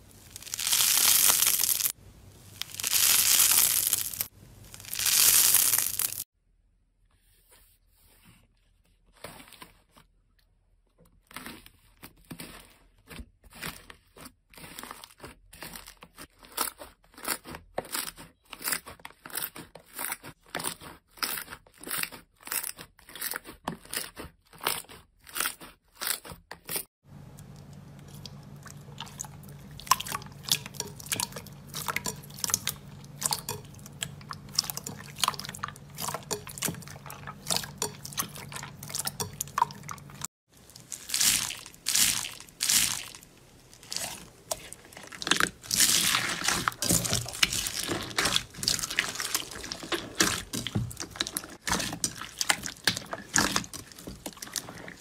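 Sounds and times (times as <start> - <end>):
hands squishing slime: 0.1 - 6.2, 28.1 - 55.0.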